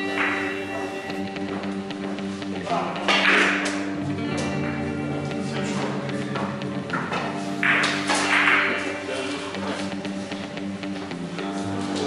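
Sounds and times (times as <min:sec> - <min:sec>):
billiard balls clacking: 0:00.0 - 0:01.6, 0:05.8 - 0:09.2
background guitar music: 0:00.0 - 0:12.0.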